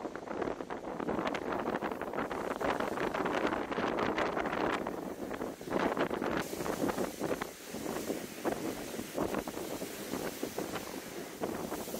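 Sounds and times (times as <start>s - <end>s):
wind buffeting microphone: 0.0s - 11.9s
sea waves breaking on wall: 1.0s - 11.9s
steady high hiss: 1.5s - 11.9s.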